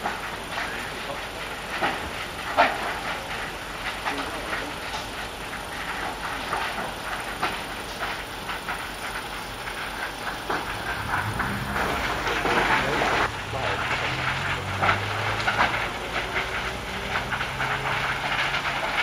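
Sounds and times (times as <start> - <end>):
burning transformer rushing noise: 0.0 - 19.0
fire crackles and pops: 0.0 - 19.0.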